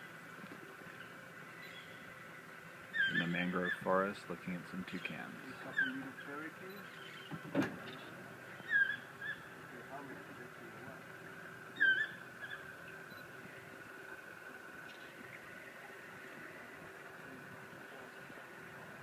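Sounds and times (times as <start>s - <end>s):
steady low hum: 0.0s - 19.0s
toucans calling: 0.0s - 19.0s.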